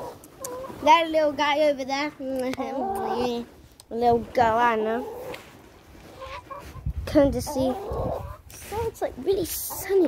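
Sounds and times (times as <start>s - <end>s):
hen clucking softly: 0.0s - 0.8s, 2.6s - 3.4s, 6.1s - 8.9s.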